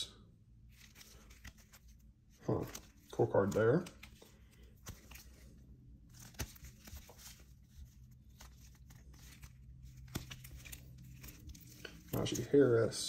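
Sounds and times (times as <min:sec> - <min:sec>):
plastic card sleeves rustling: 0:00.6 - 0:13.0.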